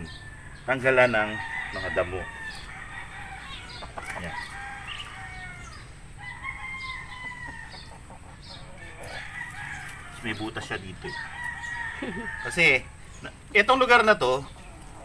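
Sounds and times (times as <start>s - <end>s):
roosters crowing: 0.0s - 15.0s.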